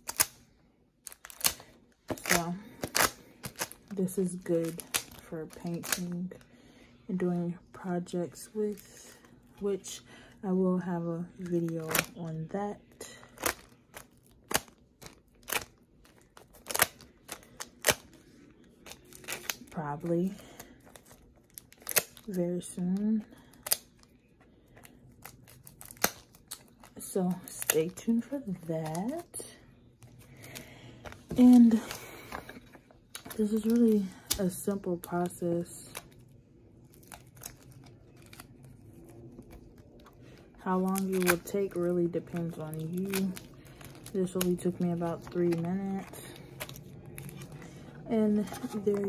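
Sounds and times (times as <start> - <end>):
tape and foil peeling off plastic: 0.0 - 0.4, 1.0 - 6.4, 13.1 - 36.2, 36.8 - 49.0.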